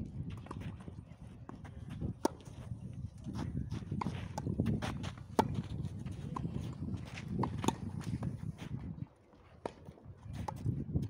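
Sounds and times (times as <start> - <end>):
shoes scuffing on clay: 0.3 - 10.8
tennis ball struck by racket: 7.4 - 8.0.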